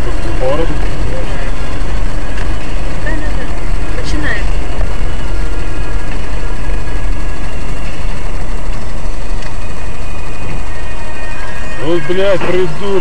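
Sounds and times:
car engine and road noise: 0.0s - 13.0s.

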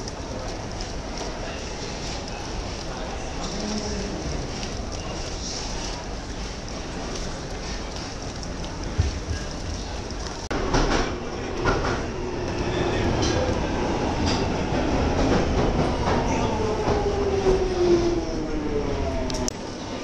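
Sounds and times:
train running rumble: 0.0s - 19.5s
rail clatter: 2.9s - 18.2s.

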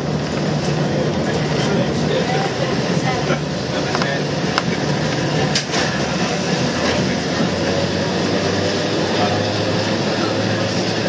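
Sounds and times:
tram motor hum: 0.0s - 11.0s
wheel on rail rumble: 0.0s - 11.0s.

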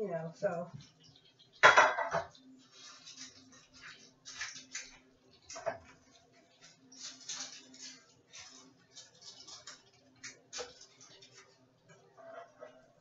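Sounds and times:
scraping and rustling of paper liners: 2.6s - 5.0s, 5.8s - 11.6s.

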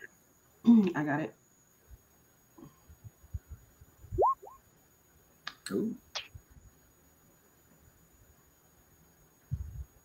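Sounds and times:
quick rising chirps: 4.2s - 4.6s.

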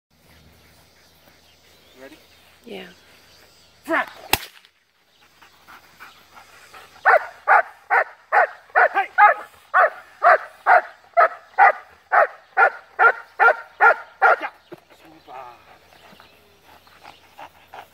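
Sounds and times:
sharp crack: 4.0s - 4.8s
dog barking: 7.0s - 14.5s.

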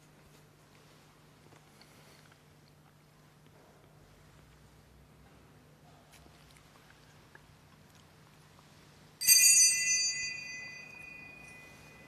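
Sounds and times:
altar bell ringing: 9.2s - 12.0s.

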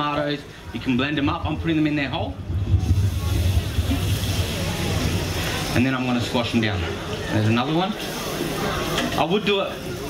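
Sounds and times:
low rumble: 1.4s - 5.3s
tomatoes sizzling in hot oil: 2.8s - 10.0s.

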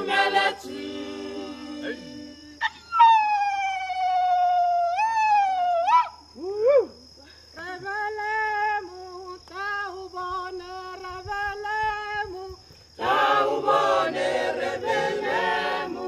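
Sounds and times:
a cappella choir singing: 0.0s - 2.8s, 13.0s - 16.0s.

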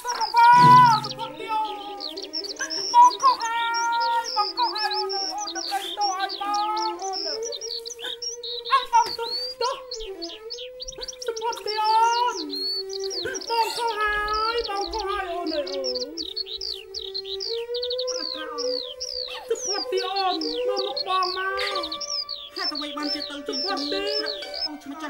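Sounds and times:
rapid high bird-like chirps: 0.0s - 25.0s
wavering melodic tone: 0.5s - 3.3s.

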